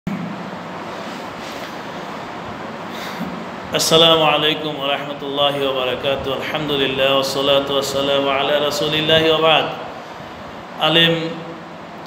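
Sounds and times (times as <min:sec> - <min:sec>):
steady hiss-like rumble: 0:00.1 - 0:12.0.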